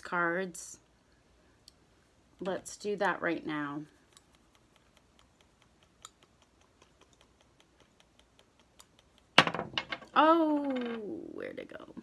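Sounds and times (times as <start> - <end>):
faint regular ticks: 1.6 - 9.4.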